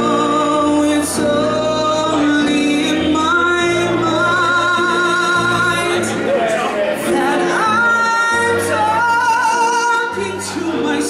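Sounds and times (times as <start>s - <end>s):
keyboard: 0.0s - 11.0s
man singing with vibrato: 0.0s - 11.0s.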